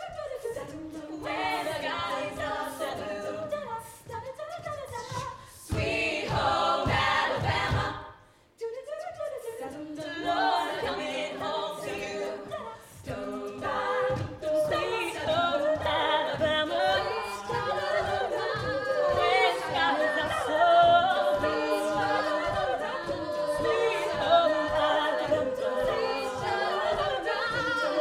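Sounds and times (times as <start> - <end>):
vocal percussion: 0.0 - 28.0
women singing in close harmony: 0.0 - 28.0.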